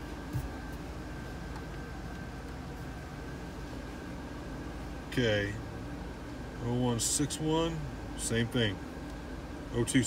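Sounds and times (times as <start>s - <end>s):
engine idling inside cabin: 0.0s - 10.0s.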